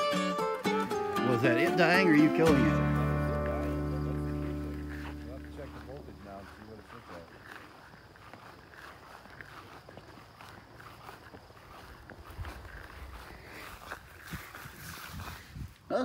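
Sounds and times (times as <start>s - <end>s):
footsteps through grass: 1.3s - 15.9s.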